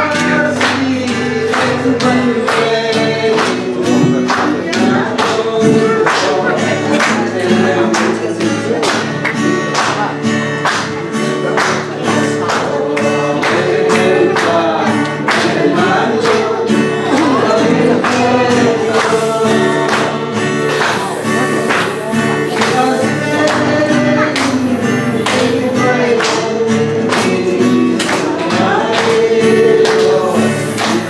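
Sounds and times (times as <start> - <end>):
man and woman singing a hymn: 0.0 - 10.3, 11.0 - 31.0
strummed acoustic guitar: 0.0 - 31.0.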